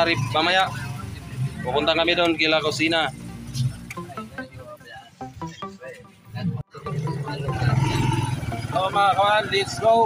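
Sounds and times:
motorcycle engine revving: 0.0 - 3.8, 6.7 - 10.0.

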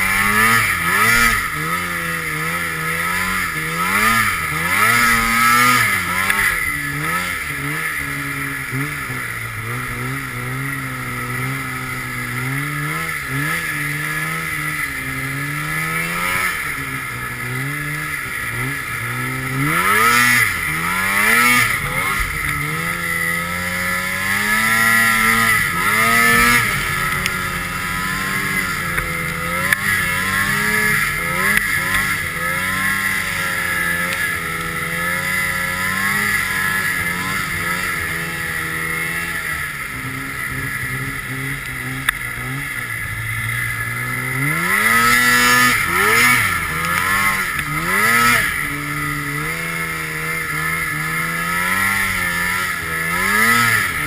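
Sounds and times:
snowmobile engine revving: 0.0 - 54.0.

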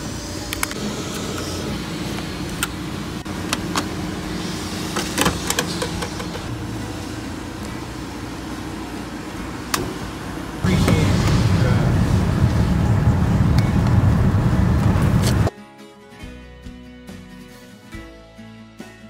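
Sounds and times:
traffic rumble: 0.0 - 15.5
loud low rumble: 10.1 - 15.5.

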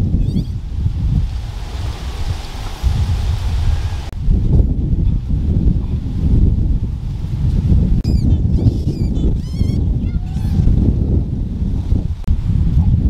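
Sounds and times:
wind rumble on microphone: 0.0 - 13.0
goose honking: 8.1 - 10.8.

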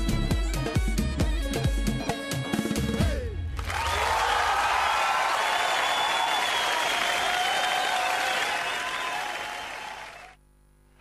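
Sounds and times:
crowd applause: 3.6 - 10.4.

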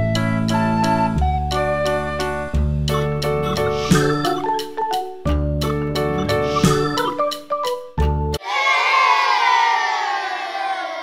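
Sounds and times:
children cheering: 8.4 - 11.0.

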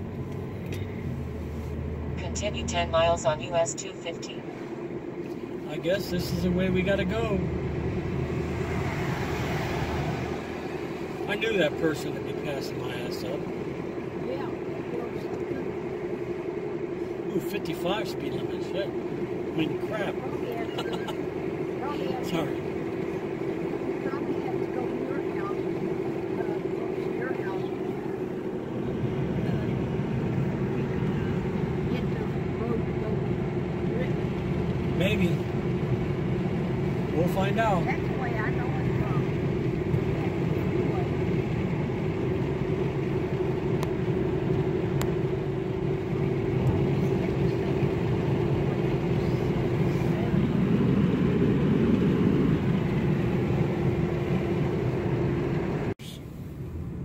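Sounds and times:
car engine and tyre noise: 0.0 - 57.0.

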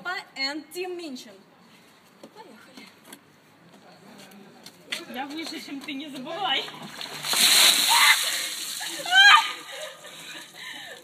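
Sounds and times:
water splashing down: 6.7 - 9.7.

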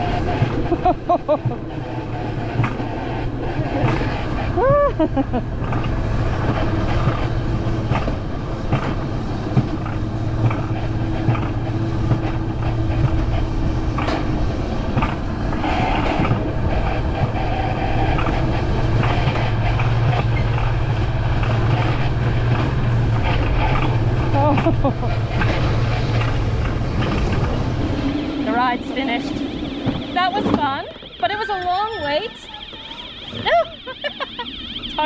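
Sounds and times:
sled wheels rumbling on rails: 0.0 - 35.0.

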